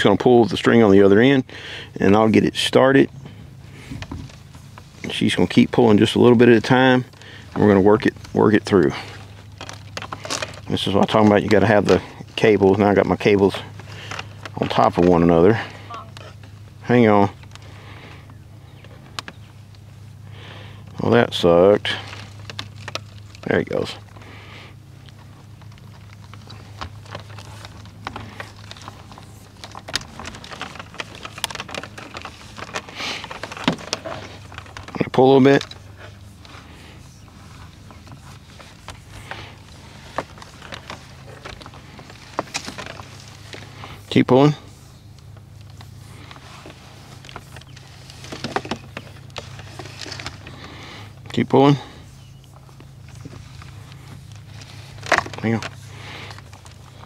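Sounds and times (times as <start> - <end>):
electrical wires rustling and ticking: 0.0 - 57.0
steady low hum: 0.0 - 57.0.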